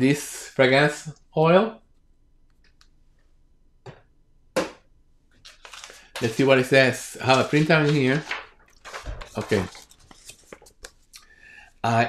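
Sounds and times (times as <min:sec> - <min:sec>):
paper rustling: 0:05.4 - 0:11.0.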